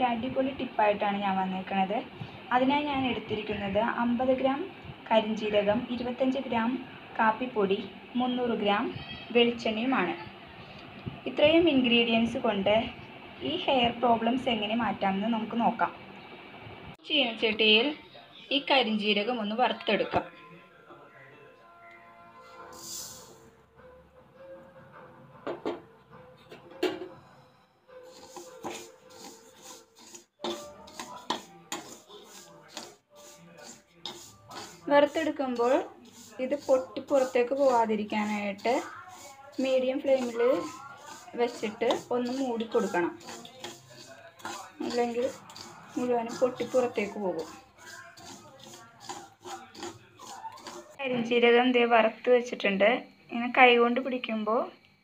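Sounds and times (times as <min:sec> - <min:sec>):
faint background music: 0:00.0 - 0:55.0
seeds poured into metal pan: 0:22.7 - 0:23.3, 0:28.1 - 0:50.8.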